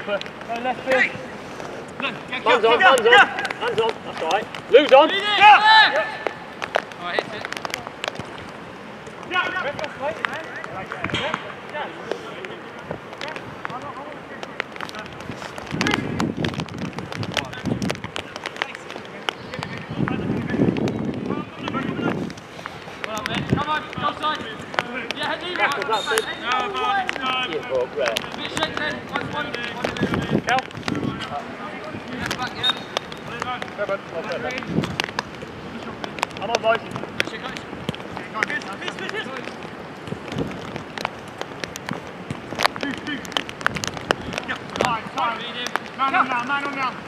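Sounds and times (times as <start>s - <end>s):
running footsteps: 0.1s - 47.0s
players shouting: 2.0s - 6.6s, 23.3s - 30.2s.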